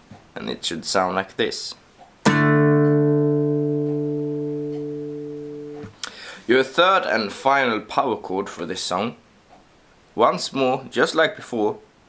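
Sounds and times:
acoustic guitar power chord: 0:02.2 - 0:05.9.

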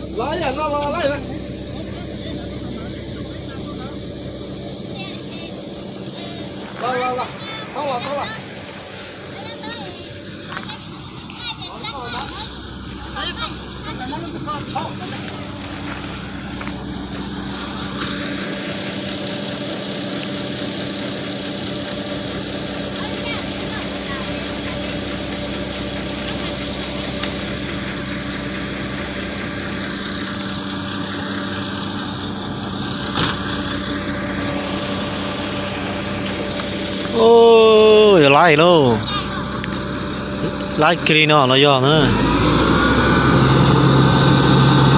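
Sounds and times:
loud wavering pitched sound: 0:00.0 - 0:19.1, 0:31.9 - 0:44.9
truck diesel engine running: 0:00.0 - 0:44.9.

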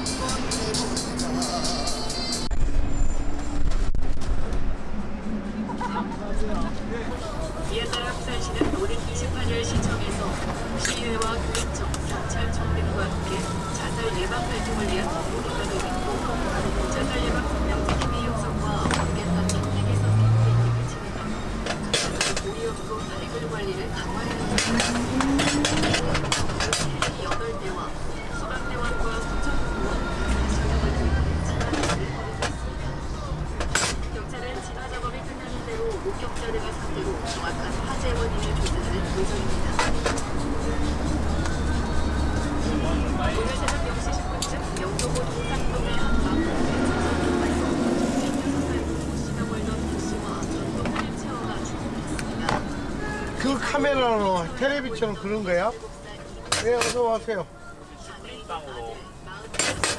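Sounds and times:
city street rumble: 0:00.0 - 0:59.9.

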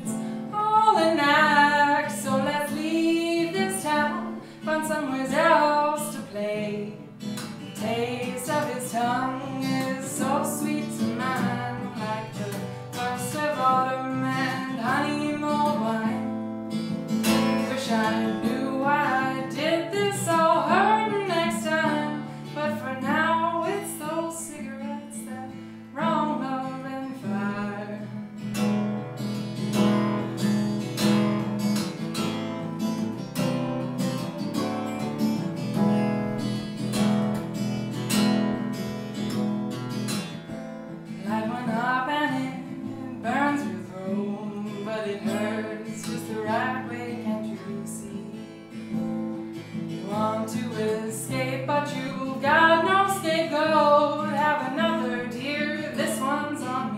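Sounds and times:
woman singing: 0:00.0 - 0:16.6, 0:17.2 - 0:28.4, 0:41.1 - 0:56.9
acoustic guitar strumming: 0:00.0 - 0:56.9.

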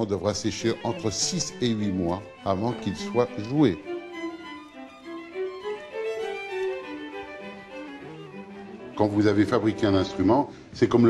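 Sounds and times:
violin slow melody: 0:00.0 - 0:11.0.

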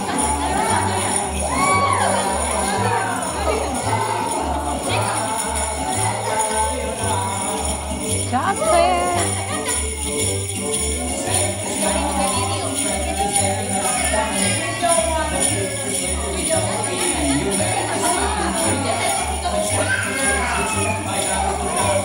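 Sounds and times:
jingle bells jingling: 0:00.0 - 0:22.0
person laughing: 0:08.4 - 0:10.0.

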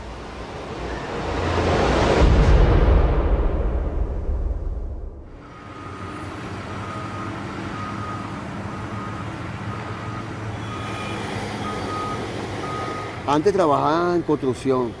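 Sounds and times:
street noise: 0:00.0 - 0:03.3, 0:05.2 - 0:15.0
reversing alarm beeping: 0:05.4 - 0:13.3
truck engine running: 0:05.4 - 0:15.0.

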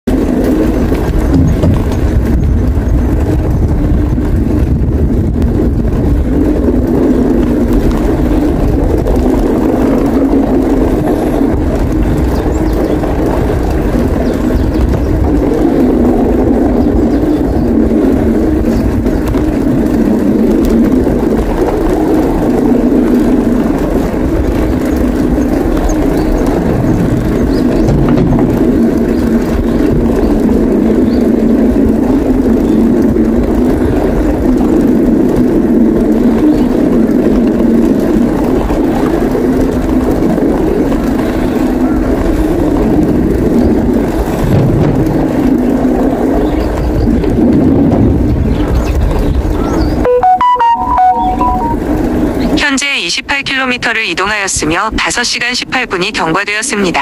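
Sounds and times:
wind on microphone: 0:00.0 - 0:52.6
bicycle tyres rolling on boards: 0:00.1 - 0:50.1, 0:51.8 - 0:52.6.

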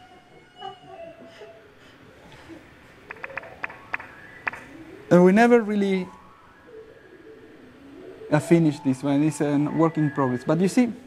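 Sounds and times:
low background hum: 0:00.0 - 0:11.0
short pitched electronic blips: 0:03.0 - 0:10.5.

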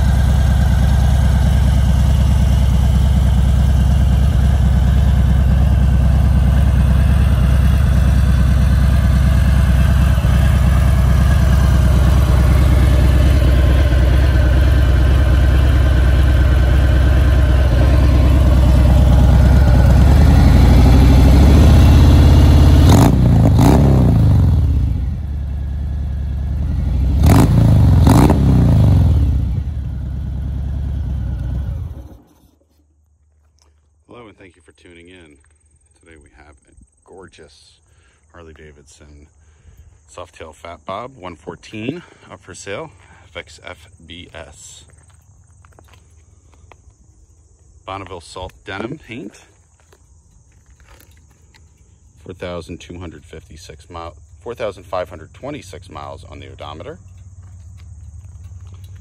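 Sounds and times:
motorcycle throttle revs: 0:00.0 - 0:32.6
motorcycle engine idling: 0:00.0 - 0:32.7, 0:49.4 - 0:59.0.

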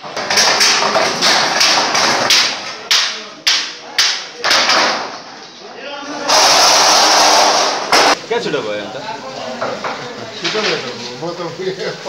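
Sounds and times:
metal sheets banging and rattling: 0:00.0 - 0:05.2, 0:06.3 - 0:08.2.

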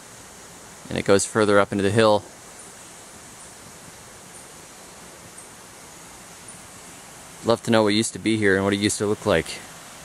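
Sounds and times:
rainforest ambience hiss: 0:00.0 - 0:10.0.

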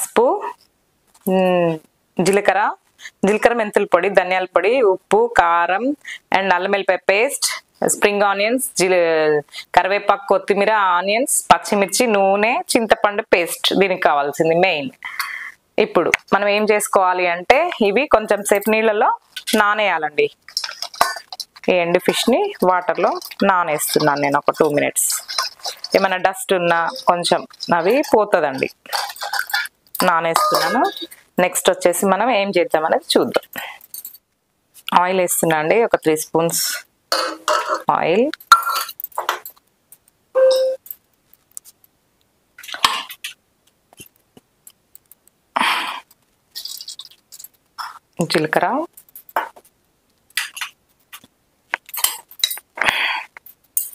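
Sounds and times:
metal clinking against steel pot: 0:20.5 - 0:21.7, 0:22.7 - 0:31.1.

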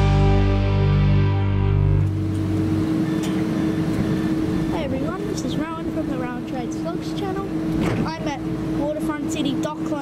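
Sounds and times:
music: 0:00.0 - 0:02.4
tram humming: 0:00.0 - 0:10.0
outdoor background noise: 0:02.0 - 0:10.0.

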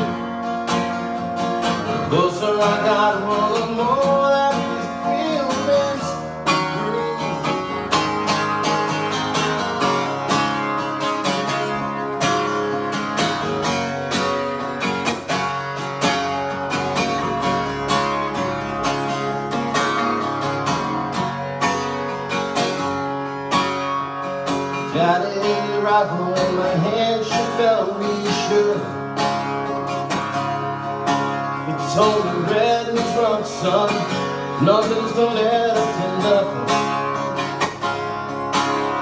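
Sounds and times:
acoustic guitar strumming: 0:00.0 - 0:39.0.

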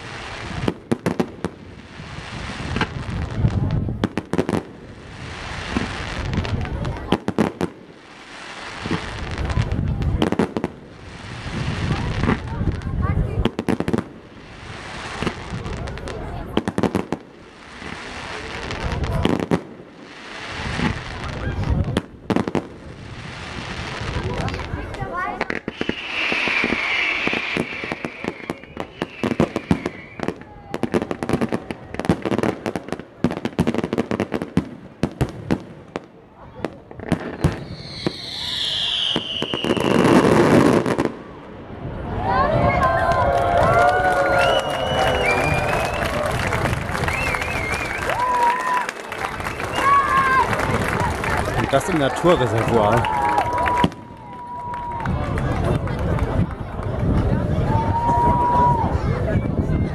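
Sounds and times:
fireworks crackling and popping: 0:00.0 - 0:59.9
fireworks hissing: 0:04.6 - 0:07.0, 0:07.7 - 0:21.9, 0:22.7 - 0:33.1, 0:37.0 - 0:41.6
falling firework whistle: 0:25.5 - 0:32.0, 0:37.1 - 0:41.3, 0:42.8 - 0:50.6.

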